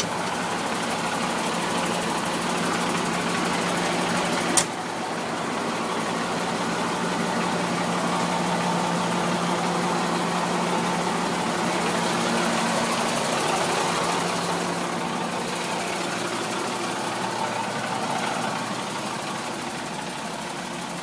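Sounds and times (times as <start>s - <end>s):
diesel truck engine idling: 0.0s - 21.0s.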